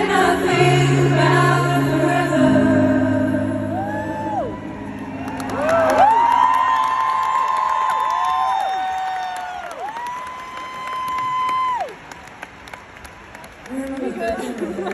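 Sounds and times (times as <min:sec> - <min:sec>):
crowd cheering and clapping: 0:03.8 - 0:14.9.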